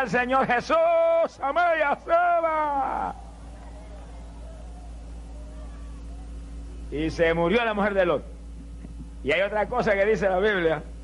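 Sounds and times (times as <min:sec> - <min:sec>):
preacher speaking: 0:00.0 - 0:05.0
low hum and hiss: 0:00.0 - 0:11.0
faint indistinct voices: 0:03.1 - 0:06.9.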